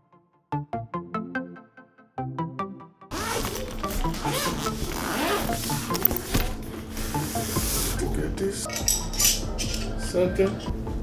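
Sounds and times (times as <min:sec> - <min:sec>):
zipper pulled open: 0:03.1 - 0:08.0
rustling and handling of case: 0:03.2 - 0:06.7.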